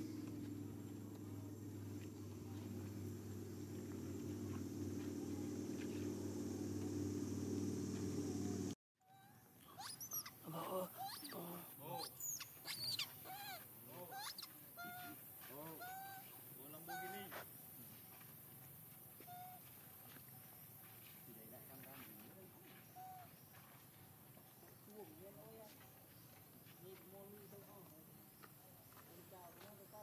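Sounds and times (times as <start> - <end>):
low drone: 0.0 - 8.8
young monkeys squeaking: 9.1 - 17.3, 19.2 - 19.6.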